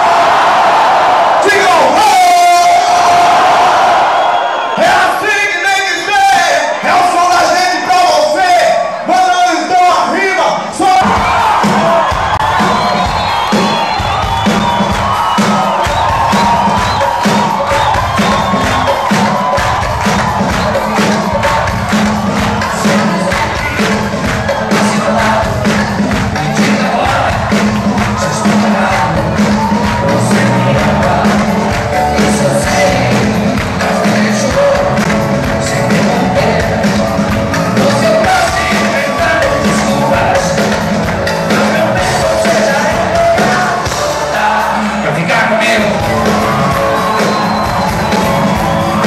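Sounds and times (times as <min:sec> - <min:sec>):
crowd cheering: 0:00.0 - 0:49.0
rock band playing live: 0:10.9 - 0:49.0.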